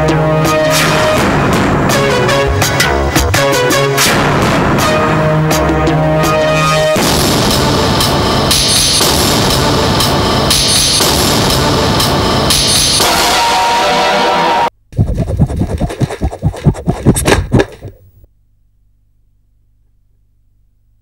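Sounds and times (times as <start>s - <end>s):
theme music with repeating beat: 0.0s - 14.4s.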